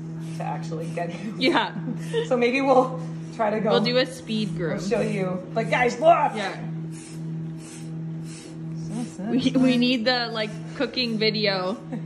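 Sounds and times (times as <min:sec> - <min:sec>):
steady low hum: 0:00.0 - 0:12.0
shedding blade scraping horse coat: 0:03.4 - 0:11.8.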